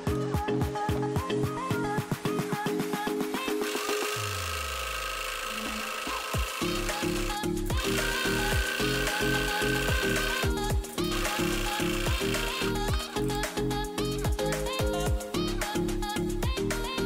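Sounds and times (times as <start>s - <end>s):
beat with repeating bass line: 6.4s - 16.9s.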